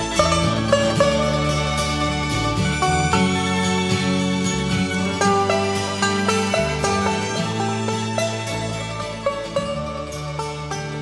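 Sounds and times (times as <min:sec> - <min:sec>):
plucked folk melody: 0:00.0 - 0:11.0.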